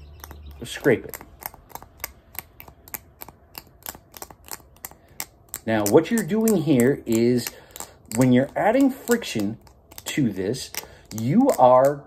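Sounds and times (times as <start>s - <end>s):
needle scraping metal screw: 0.2s - 12.0s.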